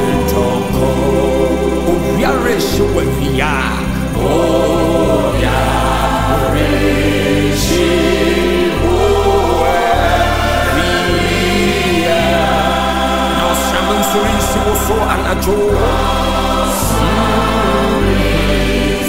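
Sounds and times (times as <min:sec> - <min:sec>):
choir singing gospel song: 0:00.0 - 0:19.0.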